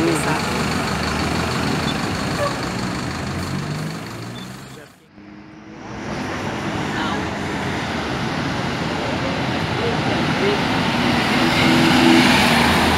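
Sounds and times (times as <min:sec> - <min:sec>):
bus pulling away: 0:00.0 - 0:12.9
street traffic noise: 0:00.0 - 0:12.9.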